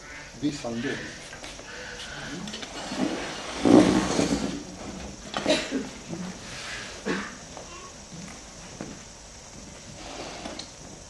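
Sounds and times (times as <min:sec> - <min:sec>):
chair scraping and creaking: 0:02.0 - 0:07.2, 0:09.6 - 0:11.0.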